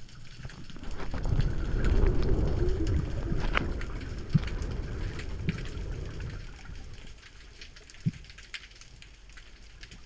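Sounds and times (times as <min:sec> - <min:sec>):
faint clicks and crackles: 0:00.0 - 0:10.0
muffled underwater rumble: 0:00.0 - 0:10.0.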